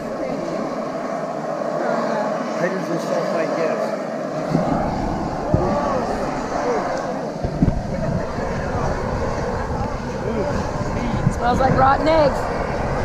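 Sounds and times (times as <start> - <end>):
people talking indistinctly: 0.0 - 12.5
steady rushing noise: 0.0 - 13.0
low rumble: 4.3 - 13.0.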